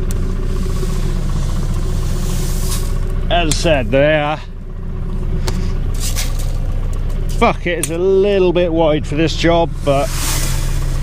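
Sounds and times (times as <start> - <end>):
tractor diesel engine idling: 0.0 - 11.0
rustle on metal: 0.6 - 3.1, 5.7 - 6.6, 9.9 - 11.0.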